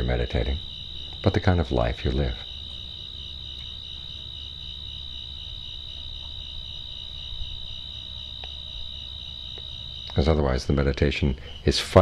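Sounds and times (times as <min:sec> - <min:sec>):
crickets trilling: 0:00.0 - 0:12.0
low steady hum: 0:00.0 - 0:12.0
faint ticks: 0:03.5 - 0:03.8, 0:05.9 - 0:06.5, 0:08.2 - 0:08.9, 0:09.5 - 0:10.3.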